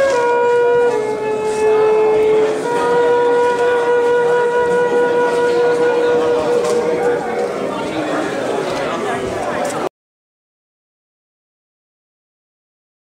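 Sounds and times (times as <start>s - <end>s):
flute playing long notes: 0.0s - 8.4s.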